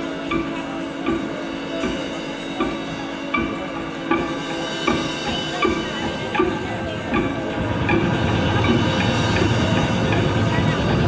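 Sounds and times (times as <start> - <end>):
droning keyboard: 0.0 - 11.0
live band playing: 0.0 - 11.0
percussion with steady pulse: 0.0 - 11.0.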